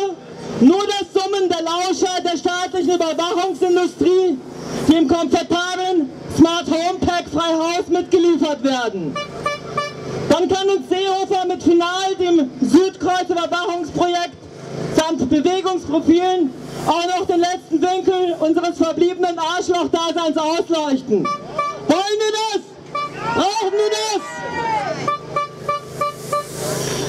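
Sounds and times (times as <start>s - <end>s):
vehicle horn short toots: 9.1s - 10.2s, 21.2s - 22.0s, 22.9s - 23.4s, 25.0s - 26.8s
rushing noise: 21.3s - 27.0s.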